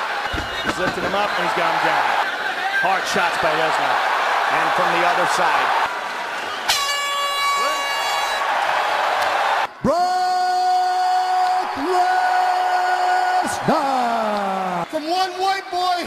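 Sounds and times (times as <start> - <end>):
arena crowd noise: 0.0 - 16.0
air horn blasts: 6.7 - 8.5.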